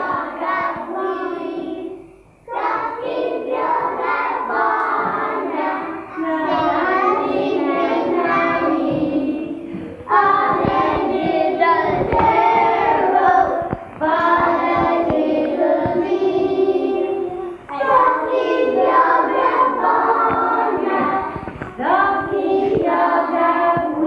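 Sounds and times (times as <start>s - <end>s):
children singing together: 0.0s - 24.0s.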